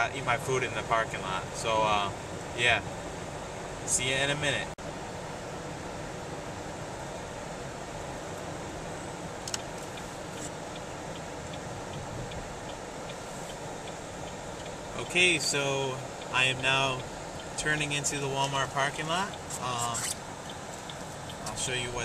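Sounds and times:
road and engine noise in car: 0.0s - 22.0s
faint evenly spaced ticks: 8.4s - 22.0s
turn signal stalk click: 9.1s - 22.0s.

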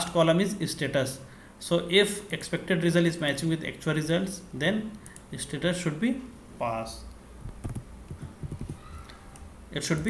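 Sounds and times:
computer keyboard typing: 7.6s - 10.0s.

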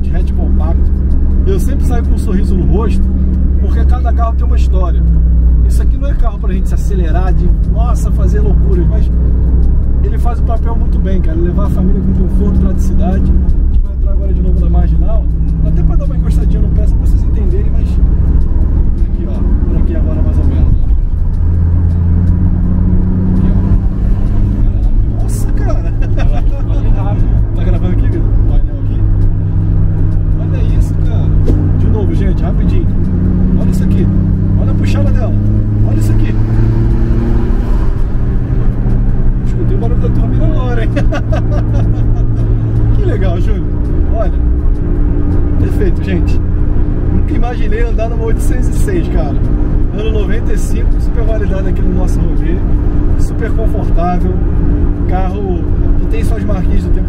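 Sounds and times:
car engine under load: 0.0s - 57.0s
road noise: 0.0s - 57.0s.

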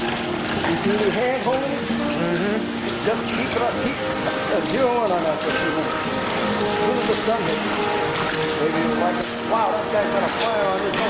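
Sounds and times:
street noise: 0.0s - 11.0s
voices talking: 0.5s - 11.0s.

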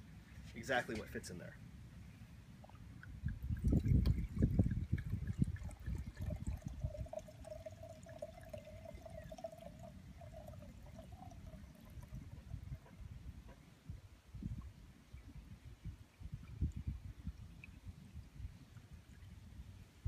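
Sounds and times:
wine pouring into a glass: 3.0s - 12.8s.

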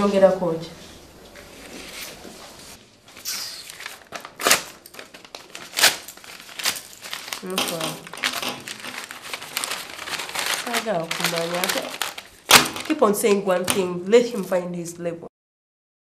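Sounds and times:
paper being crumpled: 1.4s - 14.6s.

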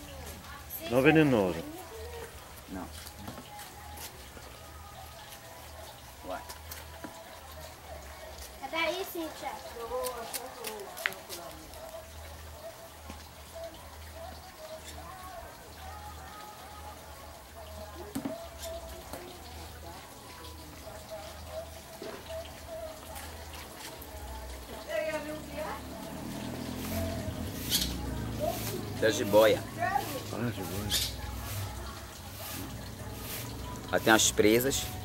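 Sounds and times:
people talking: 8.6s - 11.8s, 24.7s - 26.1s, 28.3s - 31.8s, 33.9s - 34.9s.

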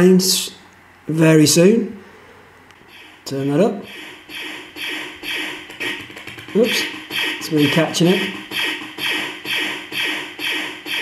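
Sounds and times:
laser zap sound effect: 3.8s - 11.0s.

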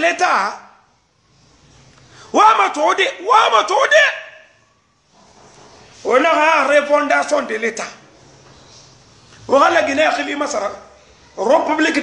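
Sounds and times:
man speaking: 0.0s - 0.7s, 2.3s - 4.5s, 6.0s - 8.0s, 9.4s - 12.0s
faint room noise hiss: 0.0s - 12.0s.

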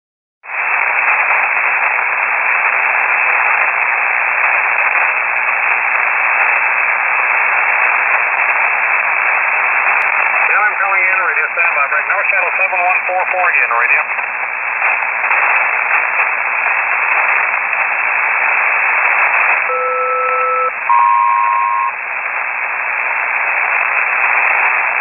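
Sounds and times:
radio static hiss: 0.5s - 25.0s
noisy radio voice: 9.8s - 16.2s.

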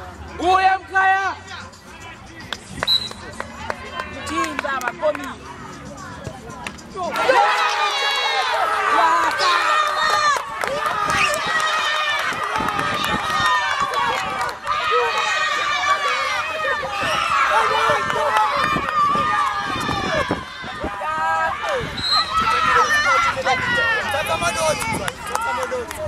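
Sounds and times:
voices shouting and calling out: 0.0s - 26.0s.

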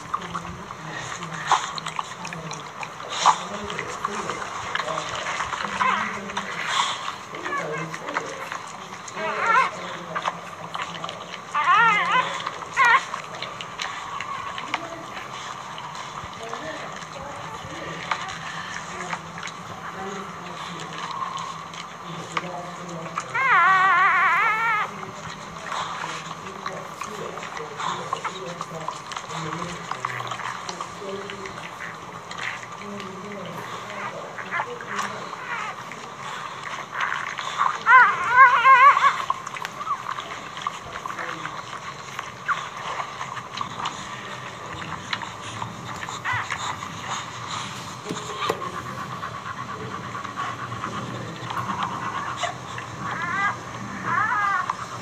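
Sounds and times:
newborn puppies crying: 0.0s - 55.0s.

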